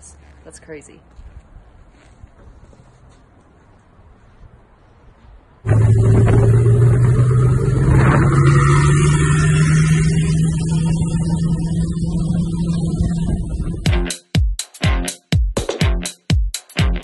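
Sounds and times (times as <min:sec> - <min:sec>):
car engine revving: 0:05.6 - 0:13.9.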